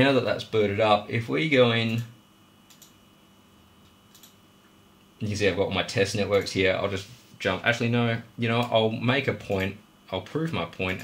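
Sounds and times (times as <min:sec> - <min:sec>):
computer mouse clicks: 0:02.7 - 0:03.0, 0:03.8 - 0:04.4.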